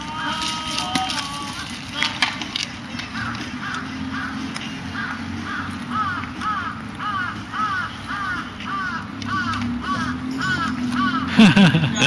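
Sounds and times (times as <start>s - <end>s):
crow cawing: 3.0s - 11.4s.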